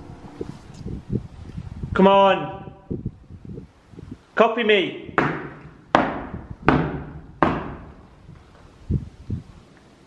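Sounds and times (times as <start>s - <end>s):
sharp knocks on a door: 5.2s - 7.9s.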